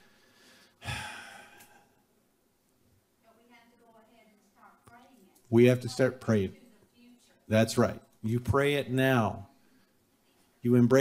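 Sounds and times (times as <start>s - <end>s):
man sighing into microphone: 0.8s - 2.0s.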